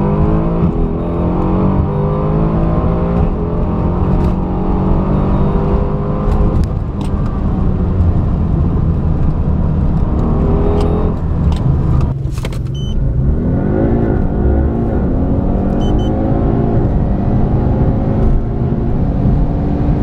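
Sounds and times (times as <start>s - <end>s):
car engine at full throttle: 0.0s - 20.0s.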